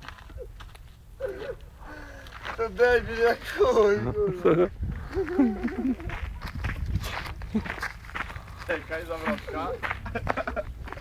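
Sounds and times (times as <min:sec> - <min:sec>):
footsteps on gravel and grass: 0:00.0 - 0:01.4, 0:02.1 - 0:03.9, 0:04.7 - 0:11.0.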